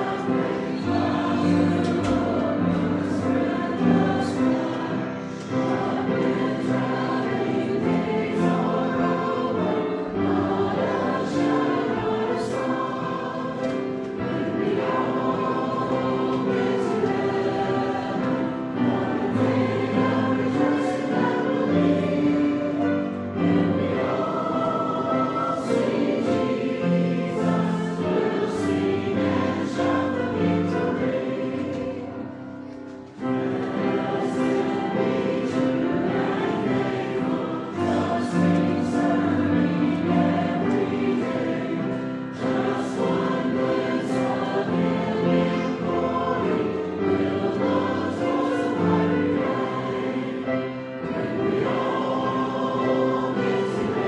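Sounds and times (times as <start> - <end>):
congregation singing a hymn: 0.0 - 54.0.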